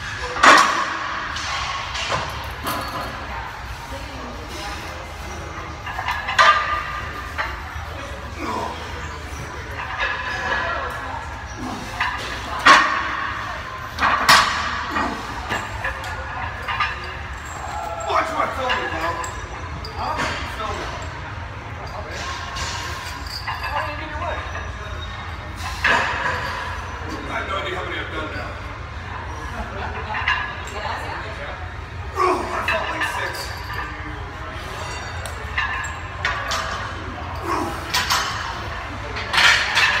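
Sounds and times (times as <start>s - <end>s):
background chatter: 0.0s - 40.0s
low gym hum: 0.0s - 40.0s.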